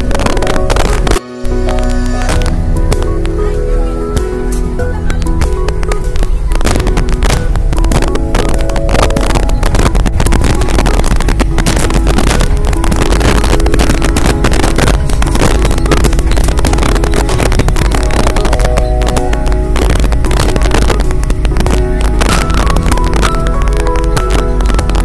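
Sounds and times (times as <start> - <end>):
vehicle engine and road noise: 0.0 - 25.0
wind buffeting microphone: 0.0 - 25.0.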